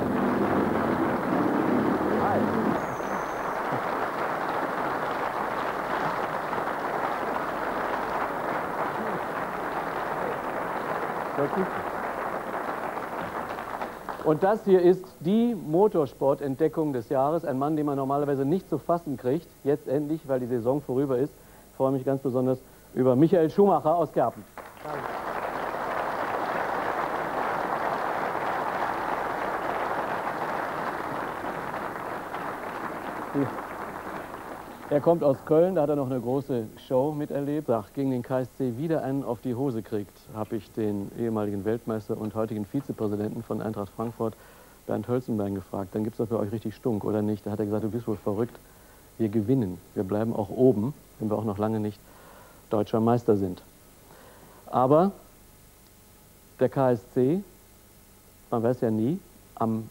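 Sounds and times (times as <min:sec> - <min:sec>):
audience applauding: 0:00.0 - 0:14.8, 0:24.5 - 0:36.1.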